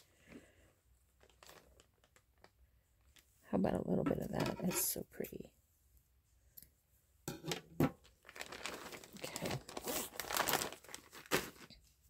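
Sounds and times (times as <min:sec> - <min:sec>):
plastic bag crinkling: 0:01.1 - 0:03.3, 0:08.0 - 0:11.9.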